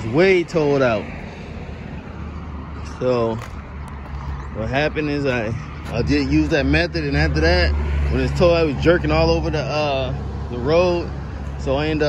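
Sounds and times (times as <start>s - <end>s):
outdoor background noise: 0.0s - 12.0s
vehicle engine rumbling: 0.0s - 12.0s.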